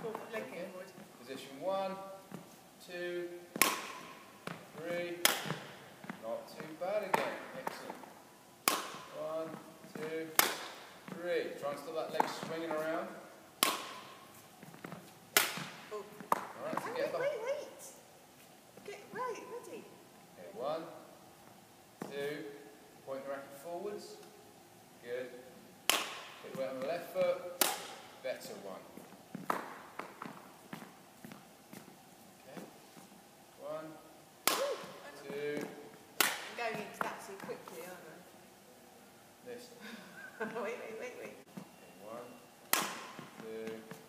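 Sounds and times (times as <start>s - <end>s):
racket striking shuttlecock: 3.5s - 4.6s, 5.2s - 5.8s, 8.6s - 9.2s, 10.3s - 10.9s, 13.6s - 14.3s, 15.3s - 16.5s, 25.9s - 26.4s, 27.6s - 28.1s, 34.4s - 35.0s, 36.2s - 36.6s, 42.7s - 43.2s.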